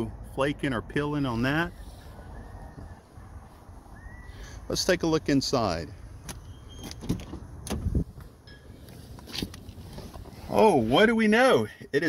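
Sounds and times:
car door swinging open: 6.2 - 8.1.

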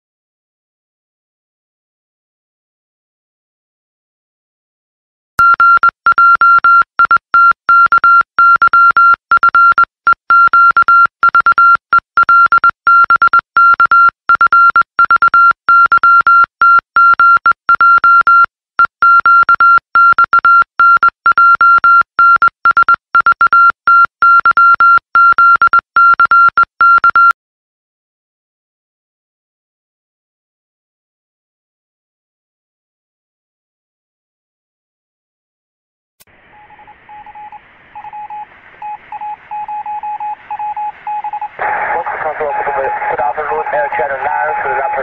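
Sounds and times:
morse code beeps: 5.4 - 27.4, 36.6 - 45.0.

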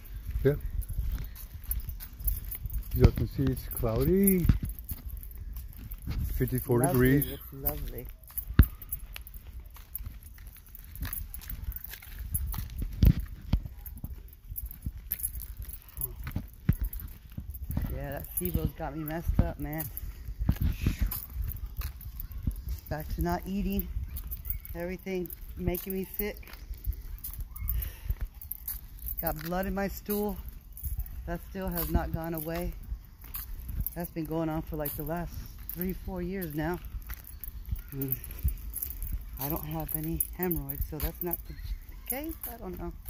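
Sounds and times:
footsteps on pavement: 0.0 - 43.0.

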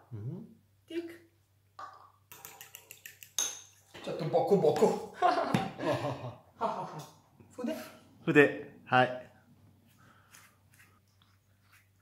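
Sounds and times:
fork clicking against ceramic bowl: 2.3 - 3.6.

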